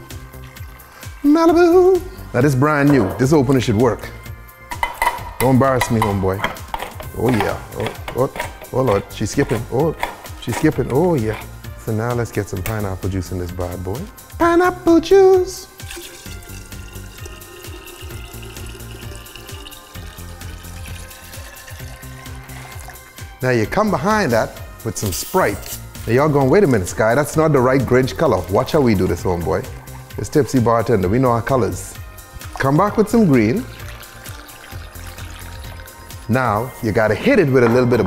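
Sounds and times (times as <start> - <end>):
background music: 0.0 - 38.0
juice pouring into a pitcher: 15.8 - 23.3, 32.2 - 36.6.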